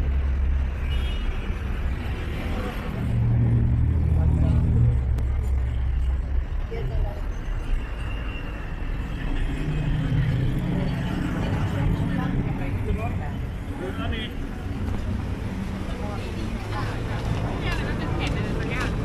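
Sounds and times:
vehicle engine rumble: 0:00.0 - 0:19.0
crowd chatter: 0:02.1 - 0:19.0.

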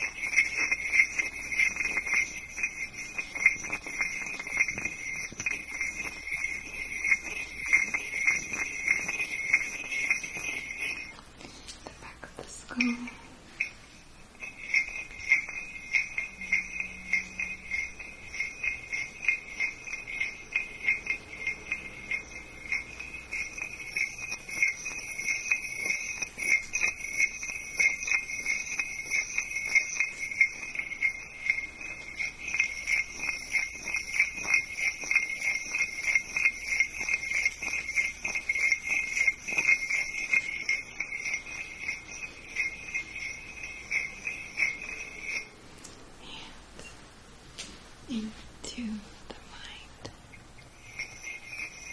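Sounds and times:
small metal bells jingling: 0:00.0 - 0:47.0, 0:50.2 - 0:51.9.

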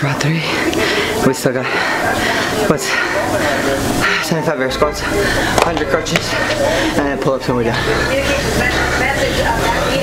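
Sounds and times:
man speaking: 0:01.2 - 0:08.0.

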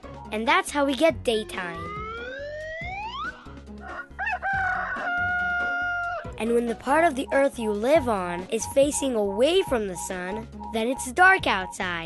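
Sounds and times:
rooster crowing: 0:03.8 - 0:06.3.

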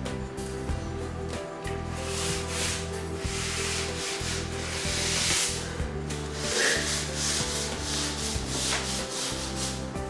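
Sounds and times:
music with held low notes: 0:00.0 - 0:10.0
rubbing strokes on hard surface: 0:01.9 - 0:10.0.

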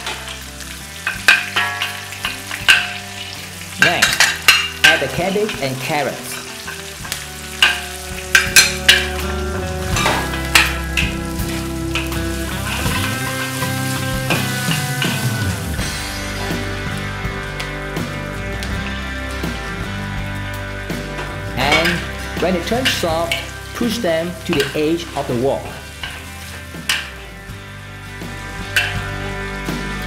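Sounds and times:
metal spatula scraping a wok: 0:00.0 - 0:11.2, 0:25.8 - 0:29.3
vegetables sizzling in oil: 0:00.0 - 0:30.0.

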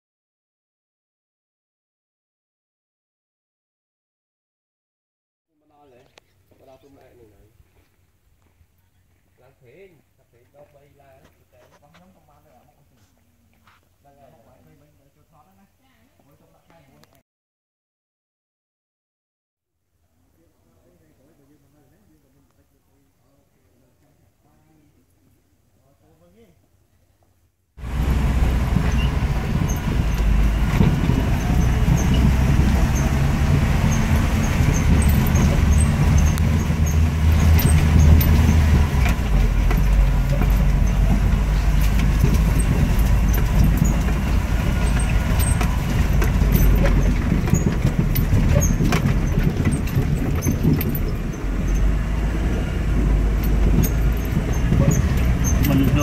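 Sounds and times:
knocks and rattles: 0:27.8 - 0:56.0
vehicle engine and road noise: 0:27.8 - 0:56.0.

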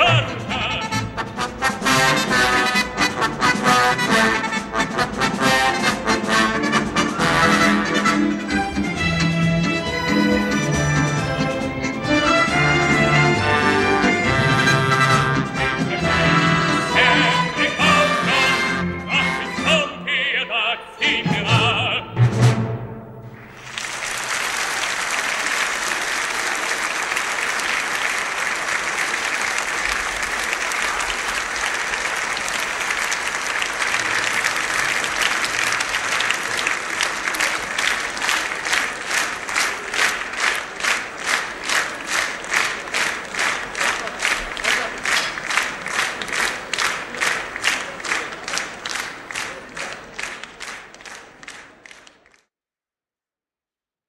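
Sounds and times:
rhythmic unison clapping: 0:00.0 - 0:19.9, 0:23.3 - 0:52.5
audience applauding: 0:23.3 - 0:52.5.

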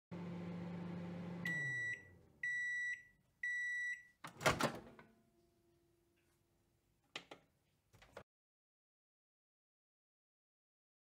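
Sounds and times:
microwave oven humming: 0:00.1 - 0:03.6
microwave timer beeps: 0:01.0 - 0:04.2.

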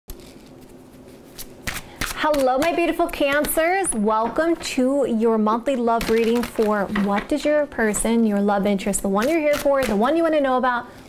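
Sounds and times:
cards being shuffled: 0:00.1 - 0:04.6.

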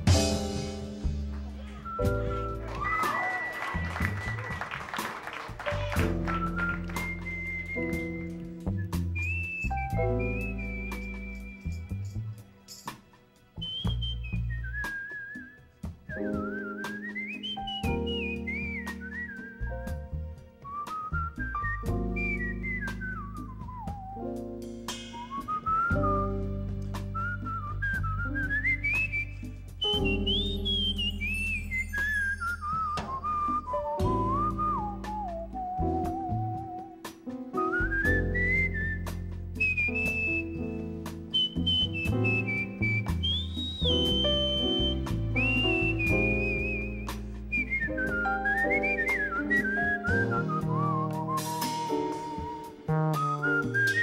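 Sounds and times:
bass notes: 0:00.0 - 0:03.0, 0:05.6 - 0:12.5, 0:17.6 - 0:36.9, 0:37.6 - 0:54.0
man whistling a melody: 0:01.7 - 0:12.3, 0:13.6 - 0:54.0.

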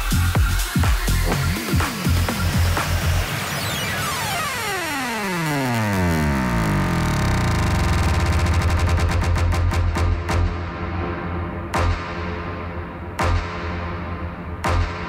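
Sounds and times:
electronic dance music: 0:00.0 - 0:15.0
steady deep bass: 0:00.0 - 0:15.0
synth sweep gliding down: 0:01.2 - 0:09.5.

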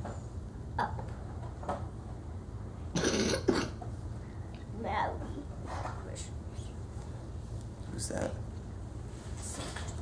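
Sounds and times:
person coughing: 0:03.0 - 0:03.8.

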